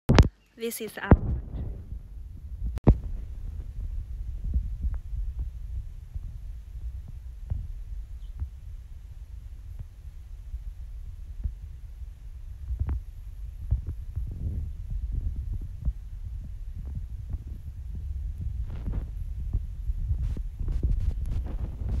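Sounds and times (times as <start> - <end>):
wind buffeting microphone: 1.1 - 22.0.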